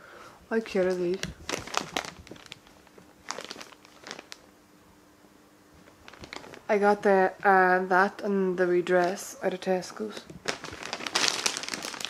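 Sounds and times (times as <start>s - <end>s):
plastic bag crinkling: 0.6s - 4.5s, 5.8s - 7.1s, 8.9s - 12.0s.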